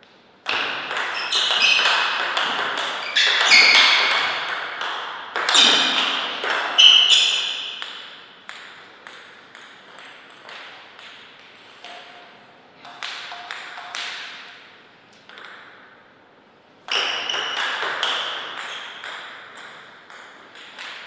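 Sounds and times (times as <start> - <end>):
bat and table hits: 0.4 - 12.2, 12.8 - 14.6, 15.3 - 15.8, 16.9 - 21.0.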